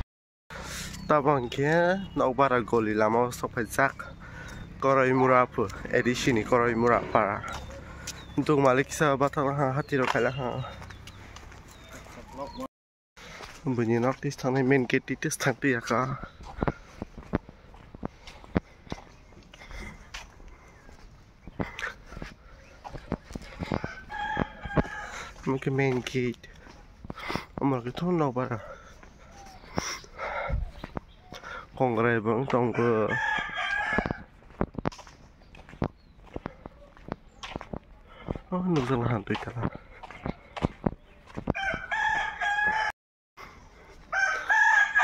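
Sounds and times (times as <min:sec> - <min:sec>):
footsteps on dirt: 0:00.6 - 0:45.0
drawn-out animal call: 0:03.6 - 0:08.4
rooster crowing: 0:23.8 - 0:25.4, 0:32.7 - 0:34.3, 0:41.6 - 0:42.9, 0:44.1 - 0:45.0.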